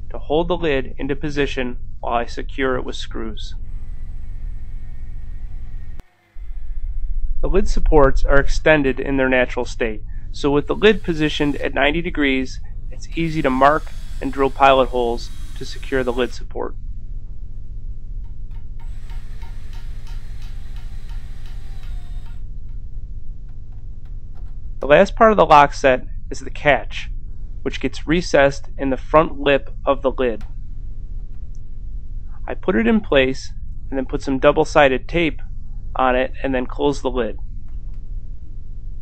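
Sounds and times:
low background rumble: 0.0 - 39.0
steady electrical hum: 0.0 - 39.0
faint thin high hum: 0.1 - 17.7
cordless drill drilling wood: 3.6 - 7.1, 10.6 - 12.0, 13.0 - 16.5, 18.8 - 22.4
faint ticking: 12.9 - 16.4.

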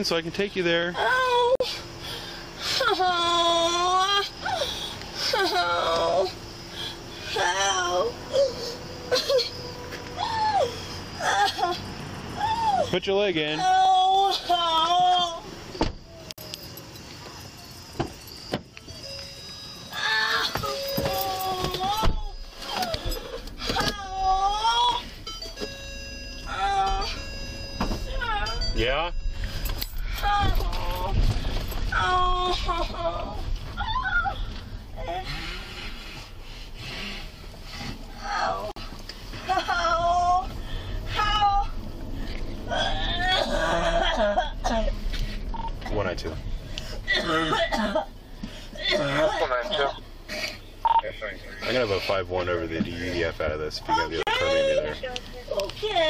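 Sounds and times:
car engine hum: 0.0 - 56.0
woman moaning and wailing: 1.0 - 1.9, 2.6 - 6.6, 7.2 - 12.9, 13.6 - 15.5, 19.9 - 25.3, 26.4 - 28.8, 29.7 - 36.0, 38.0 - 45.7, 47.0 - 50.5.

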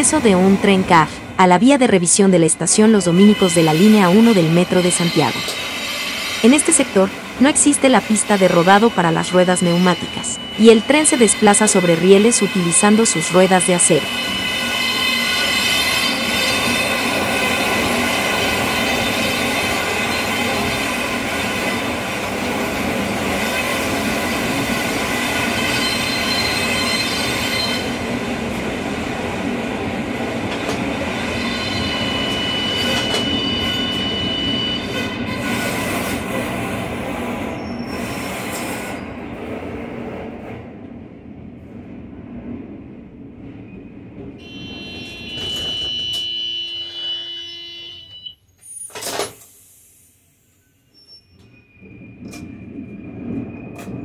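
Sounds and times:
metro train rumbling on rails: 0.0 - 54.0
high-pitched wheel squeal: 25.5 - 28.0, 31.4 - 35.8, 44.4 - 48.9.

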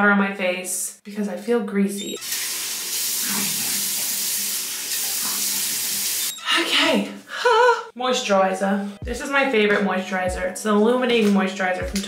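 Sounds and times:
water running from tap: 2.1 - 6.4.

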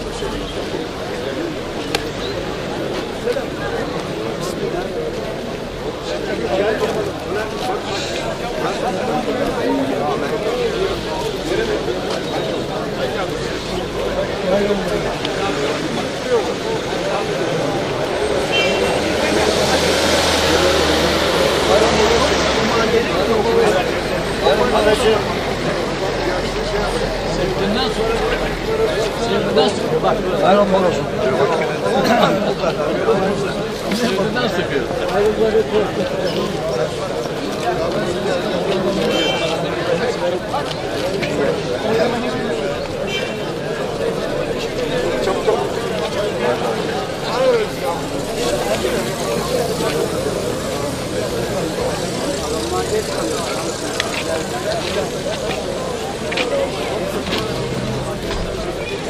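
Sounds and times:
crowd of men talking: 0.0 - 59.0.

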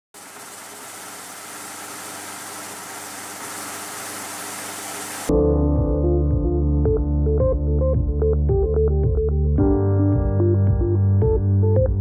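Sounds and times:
projector hiss: 0.2 - 5.3.

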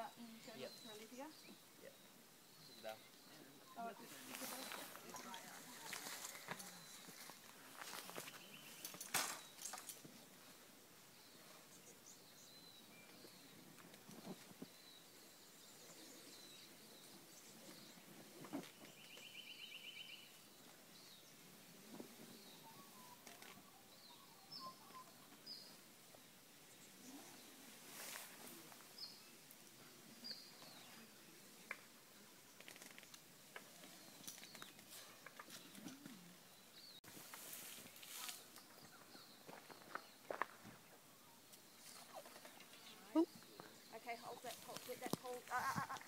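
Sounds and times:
faint bird chirps: 0.0 - 25.9.

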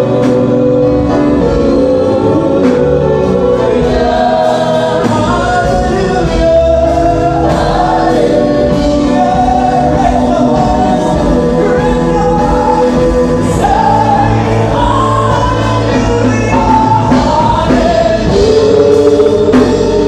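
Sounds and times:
band playing: 0.0 - 20.0
choir singing: 0.0 - 20.0.

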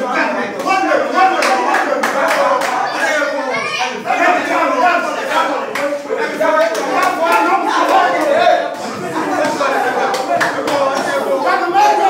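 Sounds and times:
overlapping voices: 0.0 - 12.0
sharp hand claps: 9.3 - 11.2.

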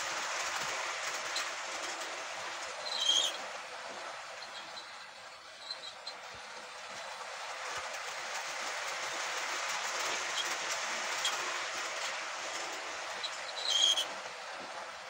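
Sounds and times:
model train motor whirring: 0.0 - 15.0
wheels clattering over rails: 0.0 - 15.0.

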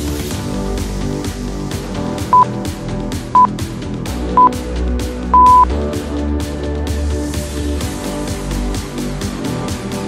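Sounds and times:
background music with steady beat: 0.0 - 10.0
short electronic beeps: 5.4 - 5.7.

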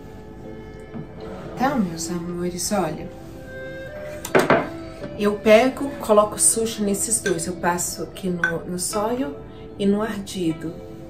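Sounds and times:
background music: 0.0 - 11.0
ceramic bowl set on counter: 7.1 - 7.6, 8.2 - 9.0.

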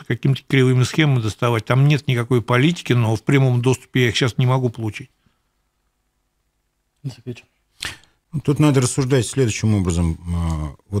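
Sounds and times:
short breathy hiss: 7.7 - 8.2.

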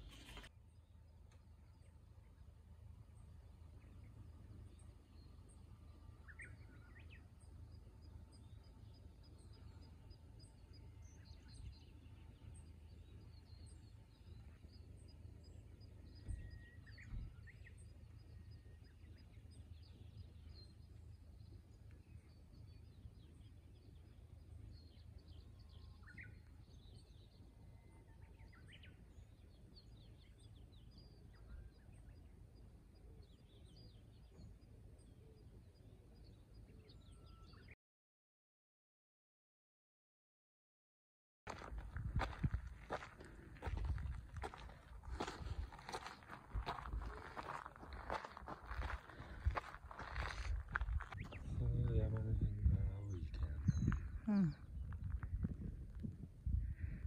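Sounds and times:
low wind rumble: 41.6 - 57.0
faint bird calls: 56.5 - 57.0.

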